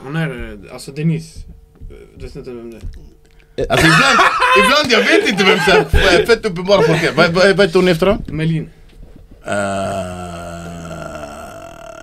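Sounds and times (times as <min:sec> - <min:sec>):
man holding long low vowel: 0:09.4 - 0:12.0.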